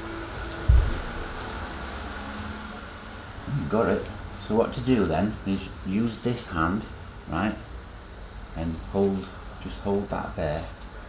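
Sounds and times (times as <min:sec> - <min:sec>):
low room hum and hiss: 0:00.0 - 0:11.0.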